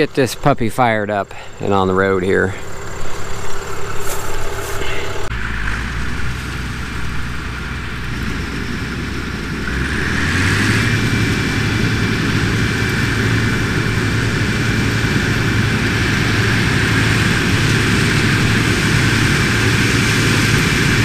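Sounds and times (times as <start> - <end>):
combine engine drone: 0.0 - 21.0.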